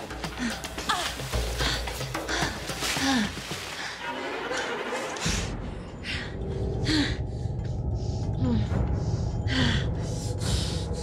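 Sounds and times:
low droning music: 0:00.0 - 0:11.0.

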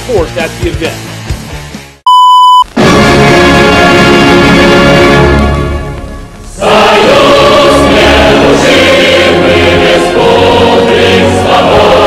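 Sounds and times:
music: 0:00.0 - 0:02.1, 0:02.7 - 0:12.0
loud electronic beep: 0:02.1 - 0:02.7.

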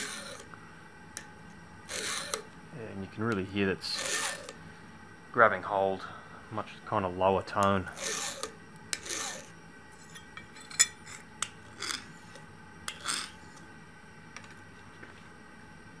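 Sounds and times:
file rasping across steel blade: 0:00.0 - 0:00.4, 0:01.9 - 0:02.5, 0:03.9 - 0:04.6, 0:07.9 - 0:10.2, 0:11.8 - 0:13.4.

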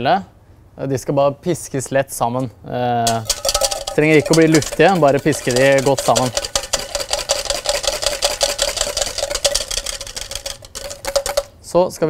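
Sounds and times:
metal bowl ringing: 0:03.1 - 0:07.5
whisk clicking in metal bowl: 0:03.1 - 0:11.6.

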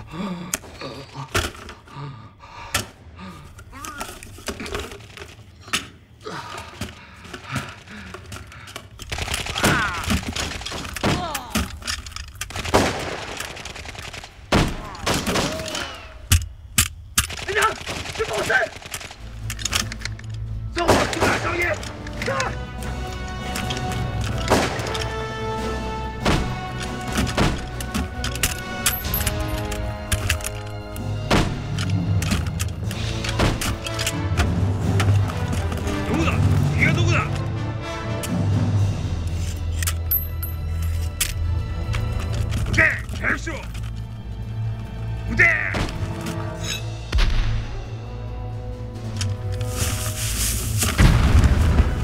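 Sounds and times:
film score with low drone: 0:00.0 - 0:52.0
people shouting: 0:09.4 - 0:10.3, 0:14.6 - 0:16.3
gunshots: 0:12.5 - 0:15.7, 0:20.8 - 0:21.6, 0:24.4 - 0:25.0.

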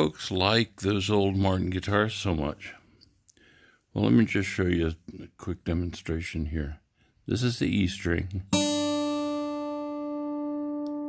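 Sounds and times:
plucked acoustic guitar note: 0:08.5 - 0:11.0.

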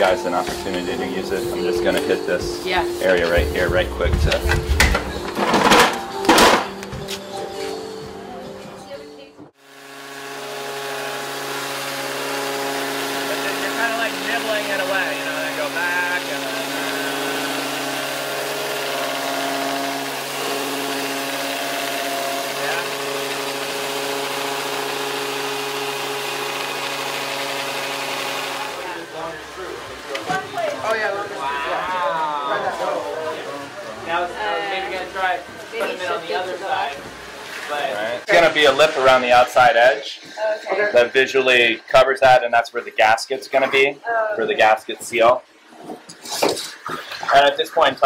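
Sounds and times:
orbital sander rasping on wood: 0:09.6 - 0:29.0
sander motor humming: 0:09.6 - 0:31.0.

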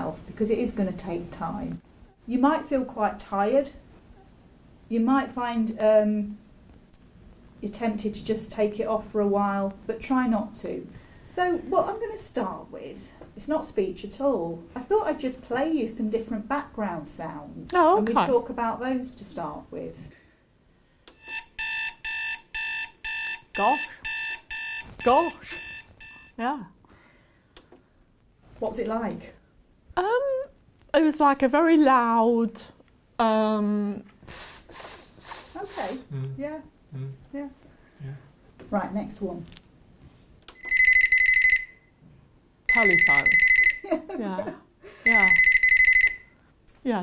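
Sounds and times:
electronic alarm beeps: 0:21.1 - 0:26.4, 0:40.6 - 0:41.9, 0:42.7 - 0:43.9, 0:45.0 - 0:46.4.

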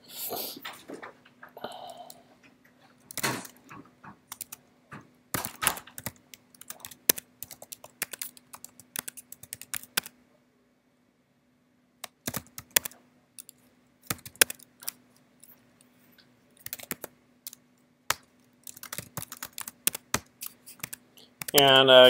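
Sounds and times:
computer keyboard typing: 0:03.1 - 0:04.6, 0:05.3 - 0:10.2, 0:12.0 - 0:15.0, 0:16.6 - 0:21.8.

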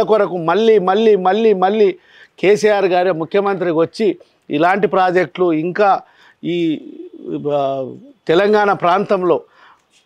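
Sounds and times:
man making wordless choked sounds: 0:06.4 - 0:08.2.

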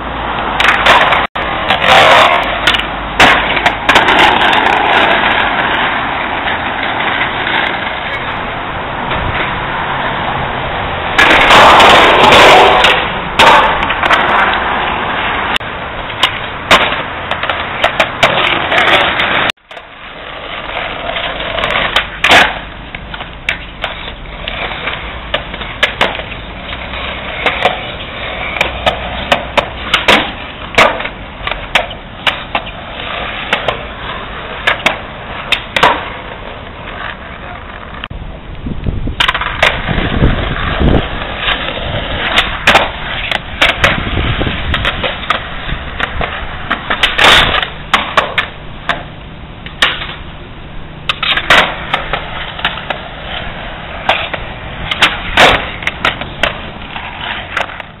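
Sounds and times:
skateboard wheels rolling on concrete: 0:00.0 - 0:58.0
skateboard clacking on pavement: 0:00.3 - 0:10.3, 0:11.0 - 0:50.4, 0:51.0 - 0:58.0.

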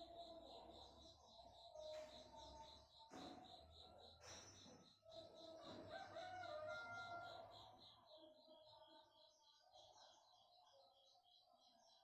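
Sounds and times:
faint rooster crowing: 0:05.5 - 0:07.7.

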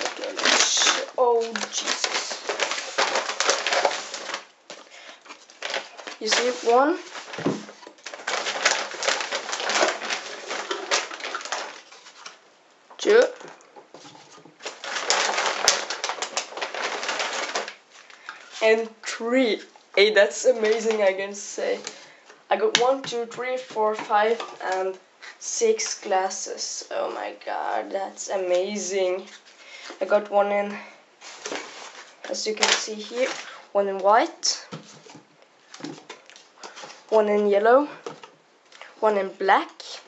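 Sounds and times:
cardboard boxes of glasses handled: 0:00.0 - 0:12.4, 0:34.7 - 0:37.1
packaging bag crinkling: 0:00.0 - 0:12.4, 0:13.2 - 0:18.6, 0:31.2 - 0:33.6.

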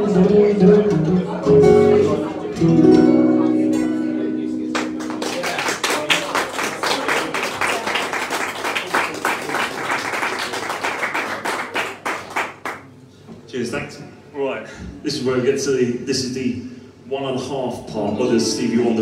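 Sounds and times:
acoustic guitar chord: 0:00.0 - 0:05.5
audience applauding: 0:04.8 - 0:12.9.

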